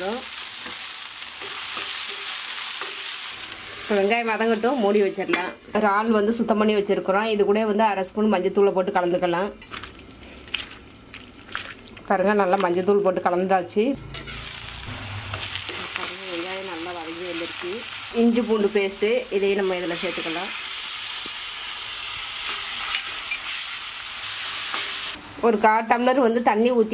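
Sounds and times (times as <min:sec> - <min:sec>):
onions sizzling in hot oil: 0:00.0 - 0:07.2, 0:14.0 - 0:26.9.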